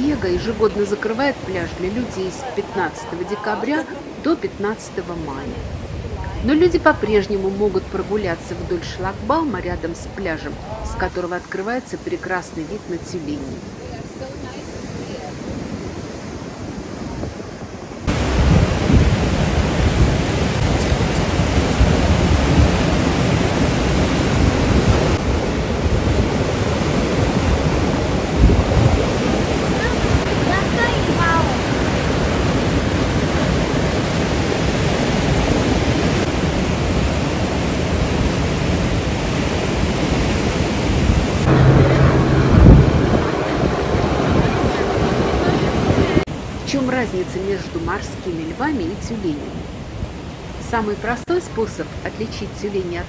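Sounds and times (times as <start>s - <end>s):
wind rumbling on microphone: 0.0s - 47.5s
ocean surf over rocks: 0.0s - 53.0s.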